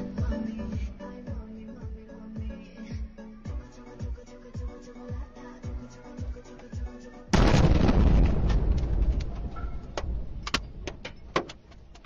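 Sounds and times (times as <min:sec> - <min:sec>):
explosion rumble: 0:07.3 - 0:10.4.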